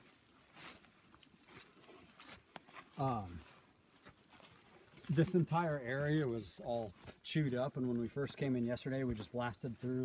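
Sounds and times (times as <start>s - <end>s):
rustling on dry leaves: 0.0s - 10.0s.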